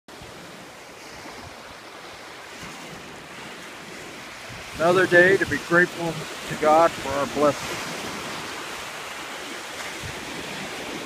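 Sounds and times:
steady rushing noise: 4.5 - 9.0.

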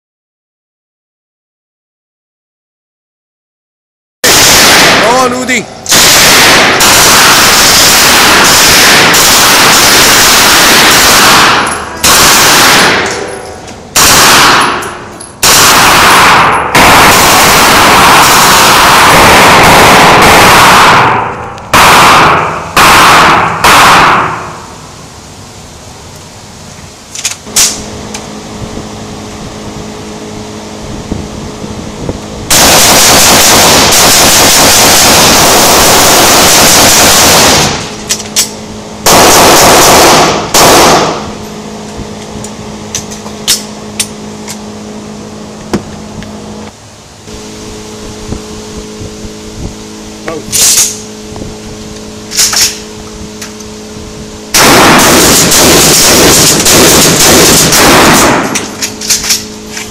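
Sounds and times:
rifle gunfire bursts: 4.2 - 13.2, 14.0 - 14.8, 15.4 - 24.6, 32.5 - 37.9, 39.0 - 41.3, 54.5 - 58.7.

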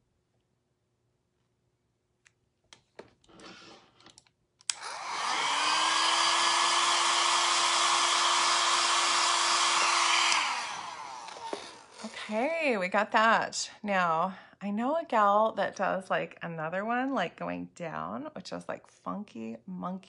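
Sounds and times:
hair dryer whining and blowing: 4.7 - 12.2.

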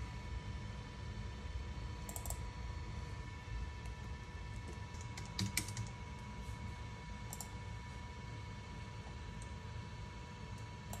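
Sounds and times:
faint steady whine: 0.0 - 11.0
laptop keyboard typing: 4.9 - 6.0.

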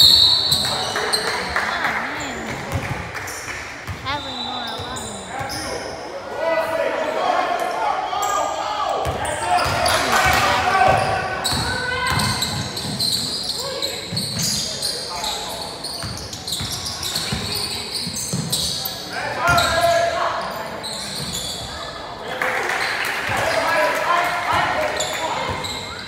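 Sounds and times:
people calling out in a gym: 4.0 - 22.2.

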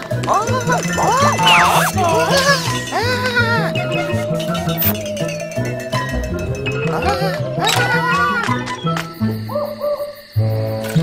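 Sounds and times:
cartoon owl hooting: 0.3 - 5.4.

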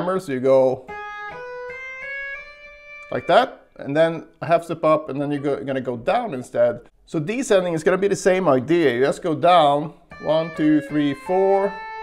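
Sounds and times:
electric guitar legato notes: 0.8 - 3.9, 10.0 - 12.0.

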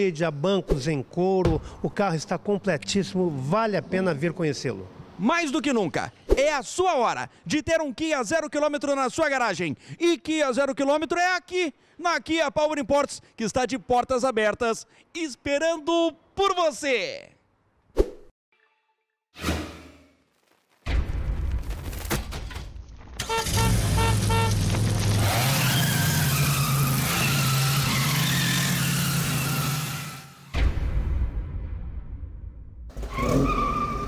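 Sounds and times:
tyre squeal: 33.0 - 34.0.

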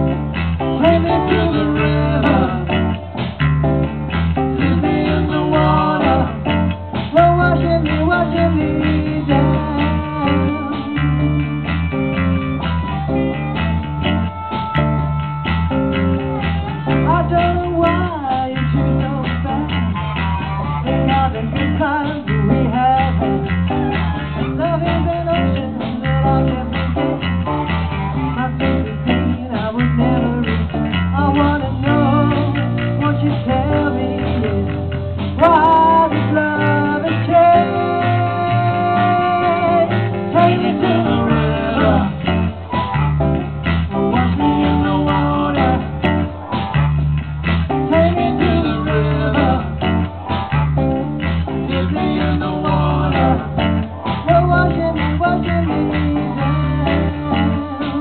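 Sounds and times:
drums: 0.0 - 58.0
electric bass: 0.0 - 58.0
amplified harmonica: 8.6 - 17.7, 19.5 - 22.6, 23.4 - 25.1, 27.0 - 29.4, 34.9 - 54.6.

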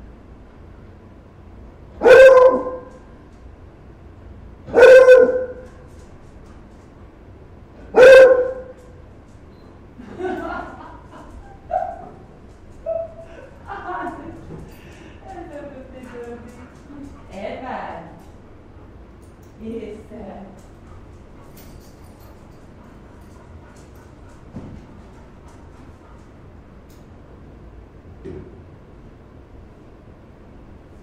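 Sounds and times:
dog barking: 2.0 - 3.0, 4.7 - 5.8, 7.9 - 8.8.

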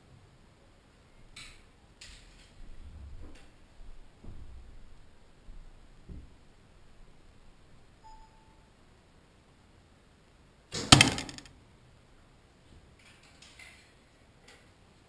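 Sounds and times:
arrow shot and hit: 10.7 - 11.5.

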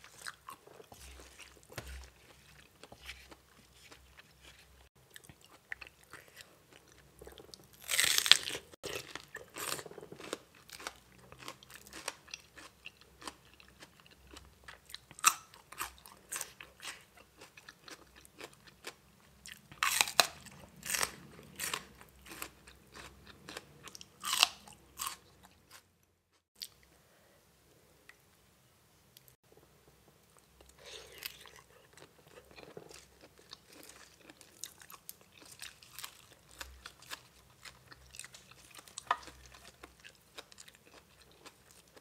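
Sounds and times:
crunchy chewing of raw vegetables: 0.0 - 25.9, 30.6 - 42.0.

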